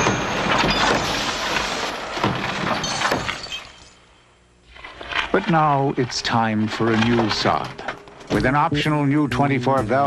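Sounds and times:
glass shattering: 0.0 - 4.0.

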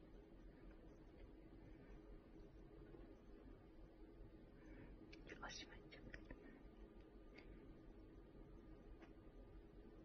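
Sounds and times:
person whispering: 5.2 - 6.6.

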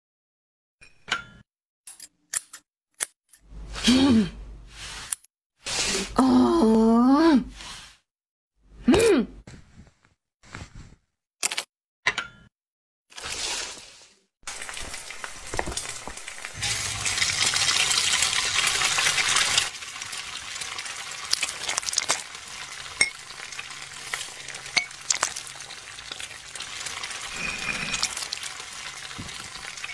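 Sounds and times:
person making vocal sound: 5.8 - 7.5
hot oil sizzling and crackling: 13.2 - 29.9
metal utensils clicking: 22.9 - 26.4.

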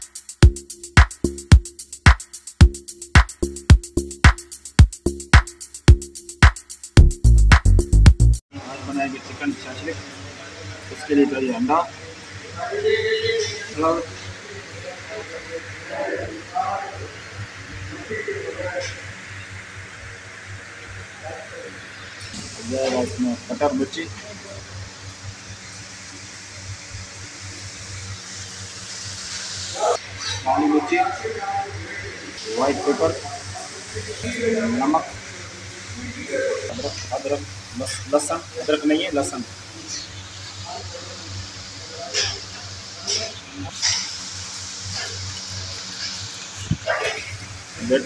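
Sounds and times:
even hiss: 0.0 - 48.0.

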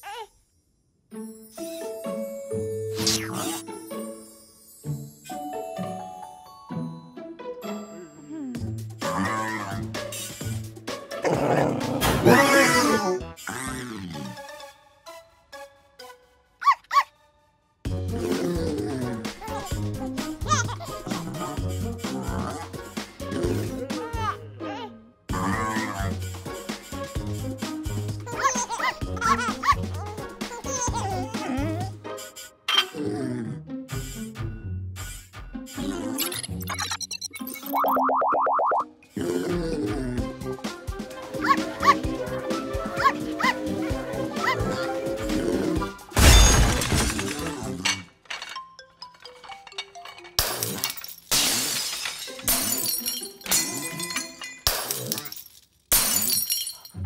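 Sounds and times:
background music: 1.0 - 57.0
puppy yipping: 16.6 - 17.1
cartoon puppy yipping: 16.6 - 17.2, 28.4 - 31.5, 41.4 - 42.1, 43.0 - 43.6, 44.4 - 44.9
cartoon boing sound effect: 37.8 - 38.9.

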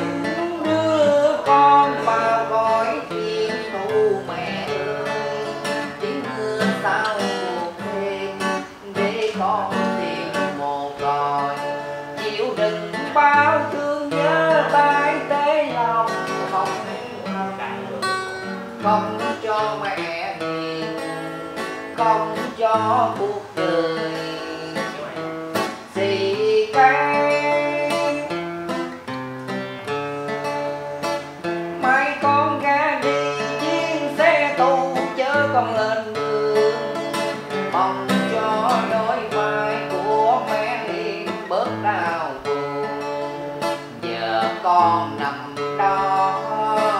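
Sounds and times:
man singing: 0.0 - 46.9
strummed acoustic guitar: 0.0 - 46.9.

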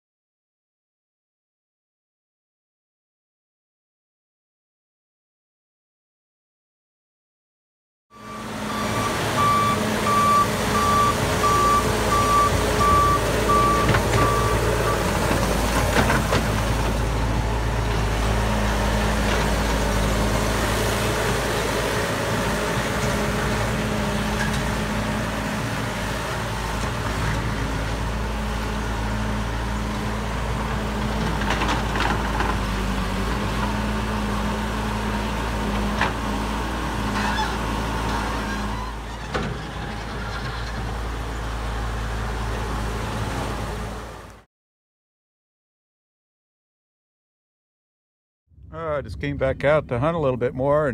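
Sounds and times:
back-up alarm beeping: 8.1 - 15.1
loader engine running: 8.1 - 44.4.

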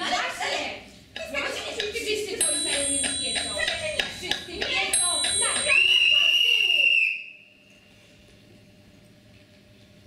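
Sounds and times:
voices: 0.0 - 7.2
whistle blown in long high note: 5.7 - 7.6.

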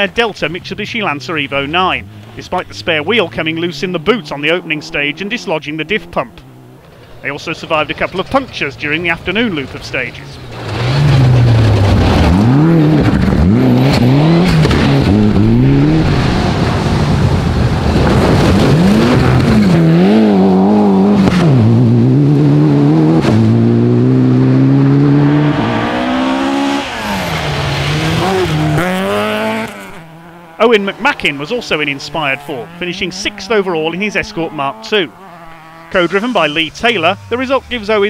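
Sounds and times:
quick gear changes: 0.0 - 17.2
rally car engine at full throttle: 0.0 - 38.0.

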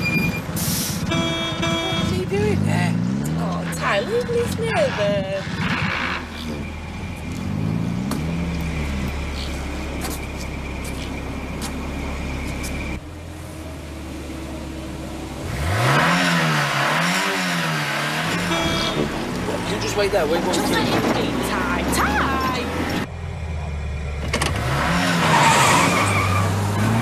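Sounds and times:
car engine revving: 1.2 - 27.0
rush of noise as car accelerates: 2.1 - 9.7, 15.2 - 27.0.

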